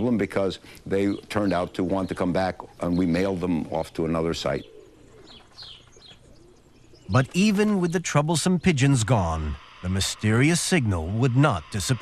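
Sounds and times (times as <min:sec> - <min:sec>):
pigeons cooing: 0:00.0 - 0:12.0.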